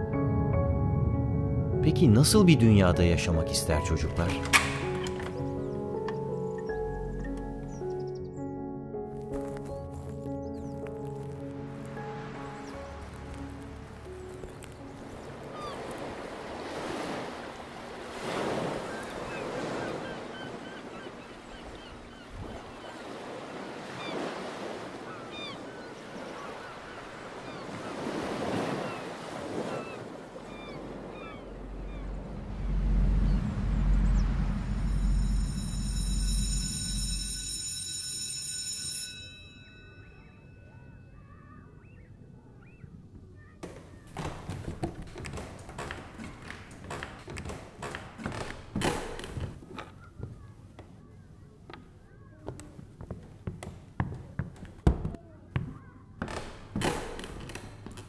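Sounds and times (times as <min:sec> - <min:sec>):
sea waves washing in: 0:11.5 - 0:37.4
small bird calls: 0:18.7 - 0:32.3
loud low rumble: 0:31.4 - 0:37.2
high steady ringing tone: 0:34.2 - 0:41.5.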